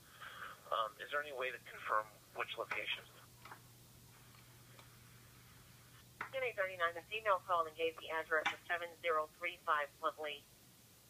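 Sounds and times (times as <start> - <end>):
faint low hum and hiss: 0.0 - 11.0.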